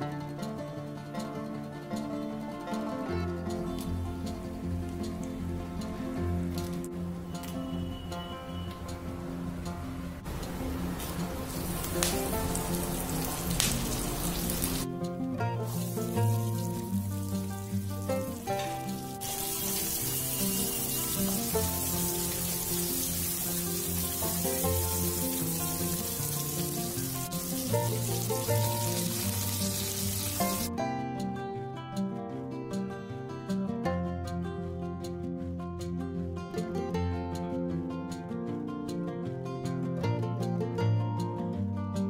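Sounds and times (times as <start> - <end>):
background music: 0.0 - 42.0
oil sizzling in a wok: 10.2 - 14.9, 15.6 - 30.7.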